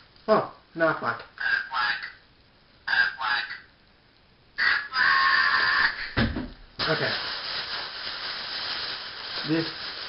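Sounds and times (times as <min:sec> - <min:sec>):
toy duck voice box quacking: 0:01.4 - 0:02.2, 0:02.9 - 0:03.6, 0:04.6 - 0:05.4.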